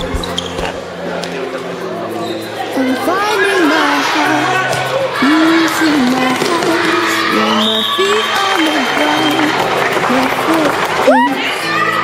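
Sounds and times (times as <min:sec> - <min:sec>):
pop song: 0:02.6 - 0:12.0.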